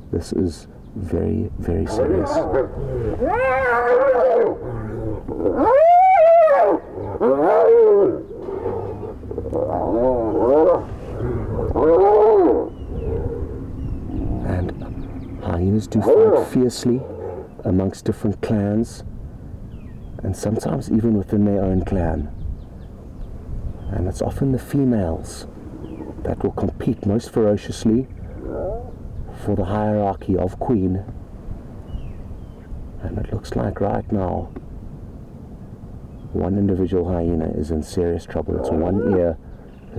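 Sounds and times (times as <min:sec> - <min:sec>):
low rumbling background noise: 0:00.0 - 0:39.9
hyena squealing: 0:01.9 - 0:14.5, 0:28.3 - 0:29.0, 0:38.5 - 0:39.4.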